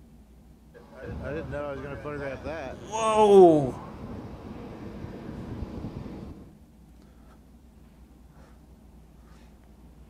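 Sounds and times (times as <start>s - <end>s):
wind rumbling on microphone: 3.8s - 6.5s.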